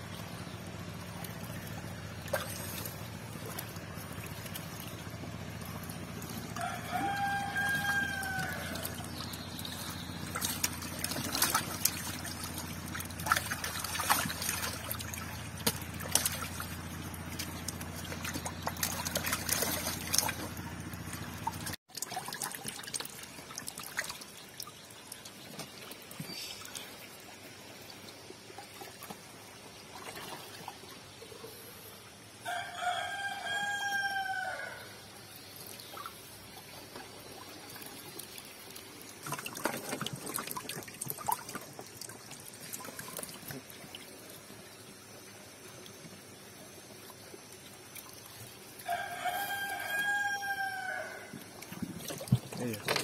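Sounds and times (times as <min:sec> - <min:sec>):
water splashing and sloshing: 0:00.0 - 0:53.0
rooster crowing: 0:06.6 - 0:09.1, 0:32.4 - 0:35.0, 0:48.8 - 0:51.4.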